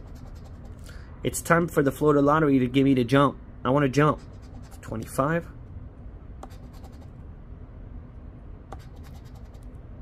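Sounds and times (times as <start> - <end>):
chip scraping scratch-off ticket: 8.8 - 9.6.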